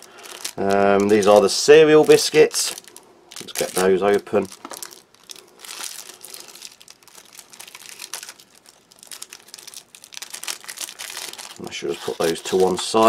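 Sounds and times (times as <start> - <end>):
plastic wrapper tearing and crinkling: 0.0 - 13.0.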